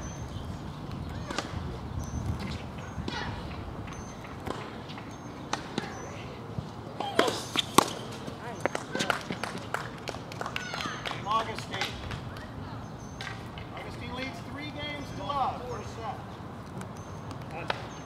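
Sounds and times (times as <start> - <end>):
tennis ball hits and bounces: 3.9 - 6.0, 7.0 - 9.5.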